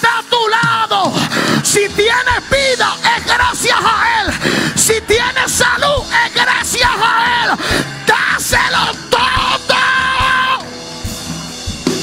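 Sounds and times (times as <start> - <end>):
sustained background music: 0.0 - 12.0
excited shouts of praise: 2.1 - 10.7.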